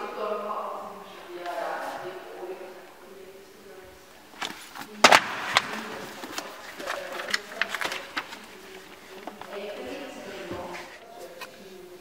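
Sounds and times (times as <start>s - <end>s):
pages rustling: 4.3s - 12.0s
books dropping onto hard floor: 4.4s - 8.6s.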